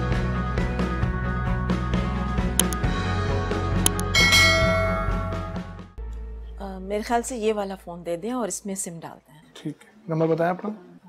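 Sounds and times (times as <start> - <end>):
background music: 0.0 - 8.8
bright bell chime: 4.1 - 5.7.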